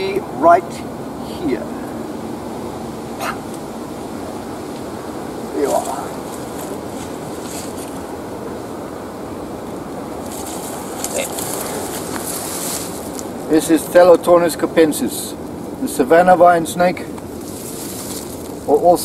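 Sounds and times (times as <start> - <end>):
wind: 0.0 - 19.0
foliage rustling: 1.4 - 14.2, 17.0 - 19.0
brief vocal sound: 3.2 - 3.5.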